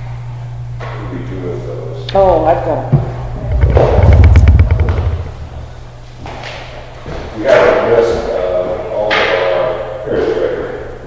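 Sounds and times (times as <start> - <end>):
handling knocks and thumps: 2.9 - 5.6.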